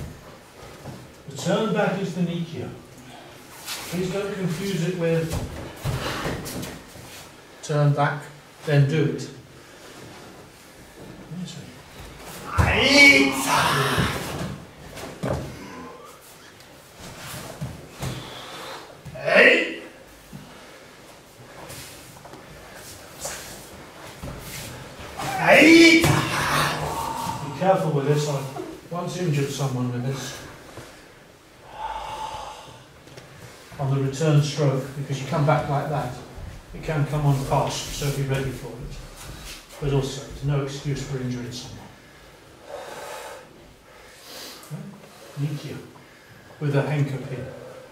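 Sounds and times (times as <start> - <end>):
person exhaling: 15.5 - 16.2, 18.0 - 18.9, 26.2 - 27.9, 31.6 - 33.0.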